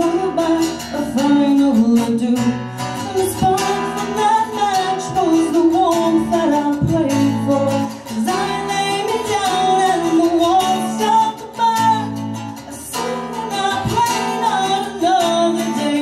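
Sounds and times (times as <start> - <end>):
strummed acoustic guitar: 0.0 - 16.0
woman singing: 0.0 - 16.0.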